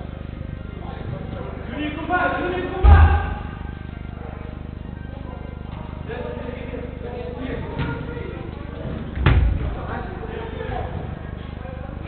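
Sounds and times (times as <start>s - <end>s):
distant players' voices: 0.0s - 12.0s
football kicked with loud thud: 9.2s - 9.7s.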